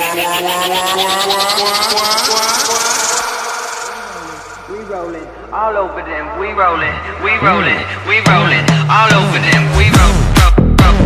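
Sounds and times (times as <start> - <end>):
electronic dance music build-up: 0.0 - 11.0.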